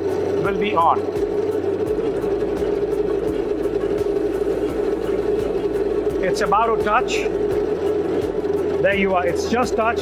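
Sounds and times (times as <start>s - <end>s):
winding machine humming: 0.0s - 10.0s.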